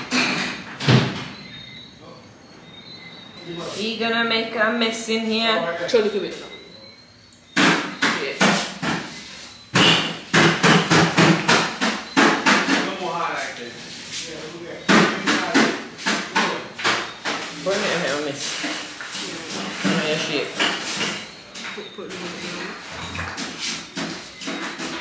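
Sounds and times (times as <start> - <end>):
people talking: 3.4 - 7.0, 8.0 - 8.6, 12.6 - 18.5, 19.1 - 20.7, 21.4 - 23.3
sharp knocks or slaps: 7.6 - 9.2, 9.8 - 13.0, 14.9 - 17.4.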